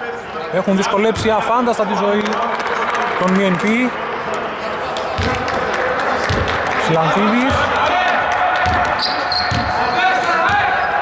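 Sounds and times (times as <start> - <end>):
basketball bouncing on hardwood: 5.2 - 5.5, 8.6 - 9.8, 10.4 - 10.7.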